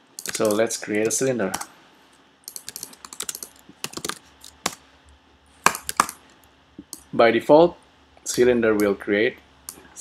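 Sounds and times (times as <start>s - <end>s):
computer keyboard keys clicking: 0.2s - 1.7s, 2.4s - 4.8s, 5.7s - 6.2s.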